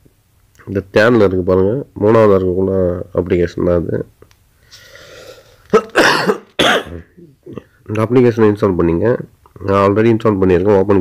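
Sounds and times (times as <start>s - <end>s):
speech: 0.6s - 4.2s, 6.9s - 11.0s
man coughing: 5.7s - 7.7s.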